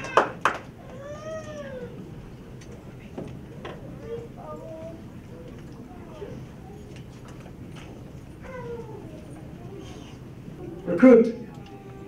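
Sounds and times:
high meow-like cry: 0:00.0 - 0:02.0.

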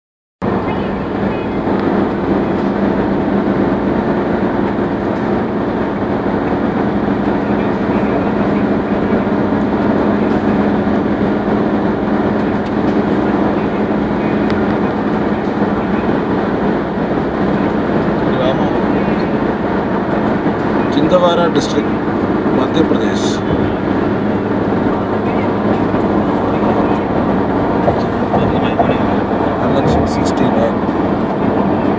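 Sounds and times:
car engine and tyre drone: 0:00.4 - 0:31.9.

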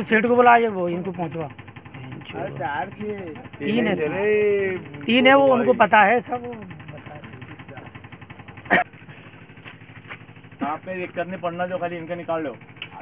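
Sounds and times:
vehicle engine running: 0:00.0 - 0:13.0
voices calling out: 0:01.5 - 0:10.9.

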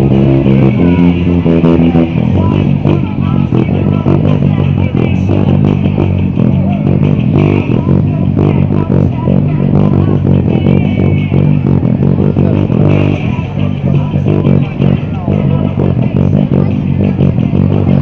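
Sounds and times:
electric bass line: 0:00.0 - 0:18.0
rock music: 0:00.0 - 0:18.0.

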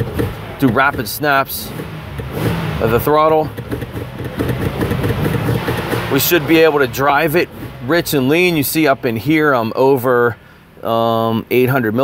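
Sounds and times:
car engine revving: 0:00.0 - 0:09.8.

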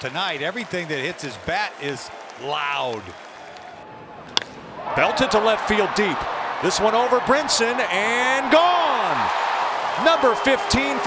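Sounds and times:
ballpark crowd noise: 0:00.0 - 0:11.0
bat cracking a baseball: 0:04.2 - 0:04.7.

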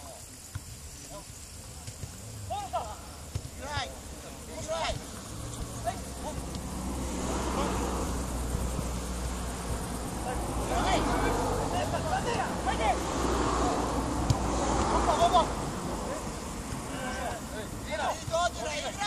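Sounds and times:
distant players shouting: 0:01.9 - 0:19.0.

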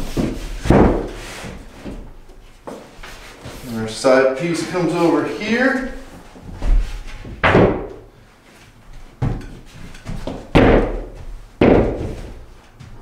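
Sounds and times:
wooden panel thuds and knocks: 0:00.0 - 0:01.2, 0:06.5 - 0:08.1, 0:09.2 - 0:12.5.

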